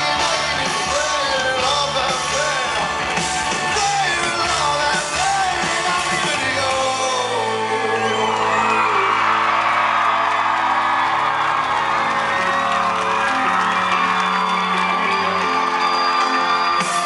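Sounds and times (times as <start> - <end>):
live rock band playing: 0.0 - 9.4, 11.4 - 17.0
audience cheering and whooping: 0.0 - 17.0.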